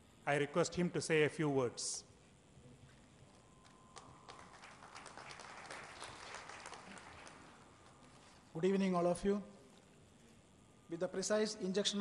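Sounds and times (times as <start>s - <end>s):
audience applause: 3.6s - 8.0s.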